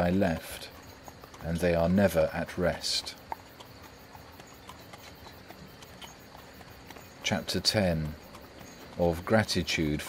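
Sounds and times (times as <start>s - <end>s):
horse hooves clip-clop: 0.0s - 10.0s.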